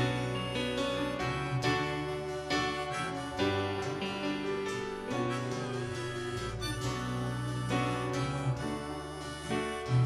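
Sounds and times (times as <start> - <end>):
live worship band playing: 0.0 - 10.0.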